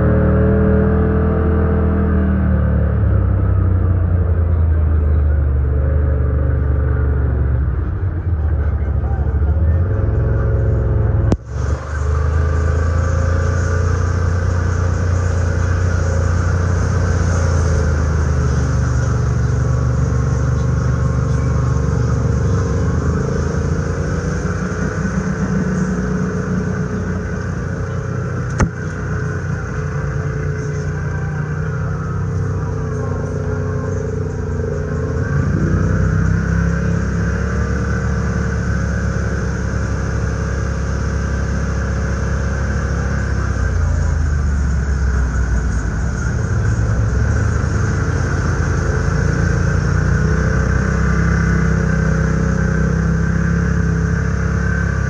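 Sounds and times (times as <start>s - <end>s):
utility vehicle engine running: 0.0s - 55.0s.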